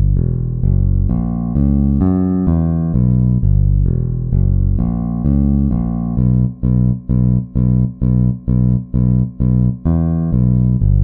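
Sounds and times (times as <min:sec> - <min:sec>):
bass guitar line: 0:00.0 - 0:11.0.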